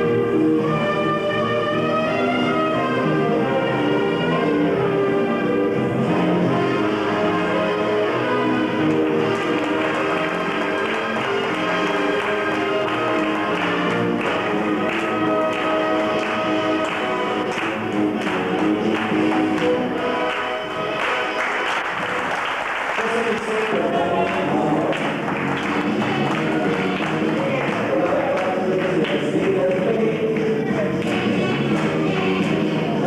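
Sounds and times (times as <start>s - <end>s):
audience applause: 6.5s - 33.0s
latin dance music with steady beat: 23.4s - 33.0s.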